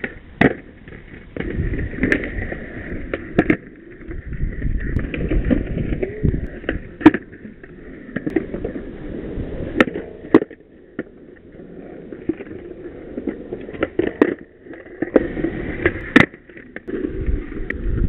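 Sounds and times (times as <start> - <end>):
skateboard clacks: 0.0 - 18.0
skateboard wheels rolling on concrete: 0.0 - 18.0.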